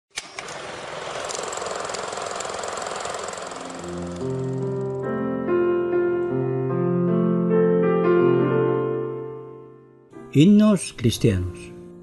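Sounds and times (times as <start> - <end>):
rapid rattling hiss: 0.6 - 5.1
piano notes: 3.7 - 12.0.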